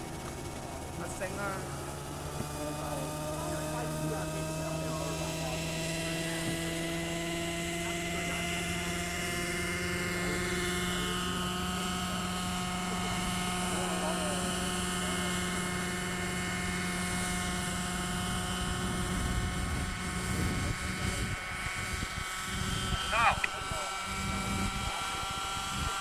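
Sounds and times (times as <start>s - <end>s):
model helicopter hovering: 0.0s - 26.0s.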